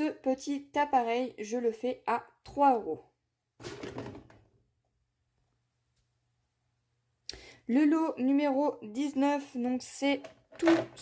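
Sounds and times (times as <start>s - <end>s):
plastic tool moved on table: 3.6s - 4.4s.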